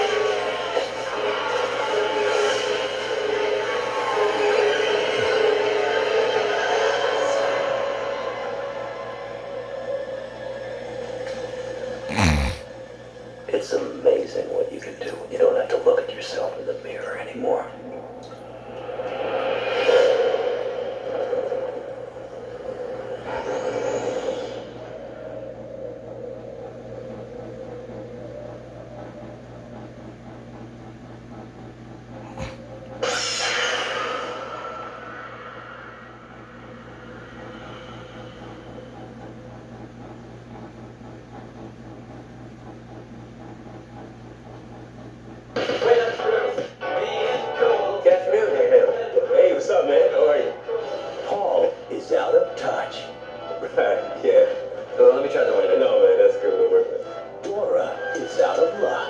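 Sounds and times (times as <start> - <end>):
trailer music through tv speaker: 0.0 - 12.1, 12.7 - 59.0
faint steady hum: 0.0 - 59.0.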